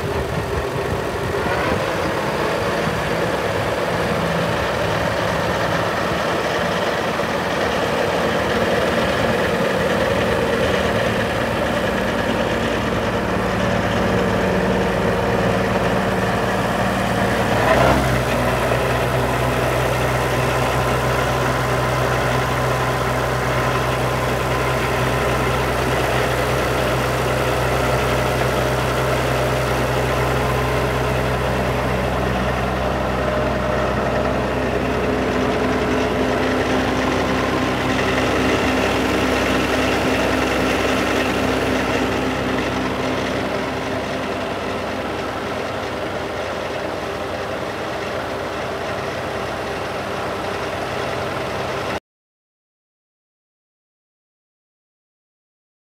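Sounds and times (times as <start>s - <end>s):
tractor engine idling: 0.0s - 52.0s.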